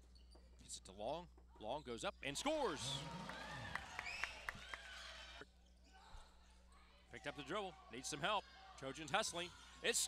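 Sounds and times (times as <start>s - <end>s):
sneakers squeaking on court: 0.0s - 0.6s.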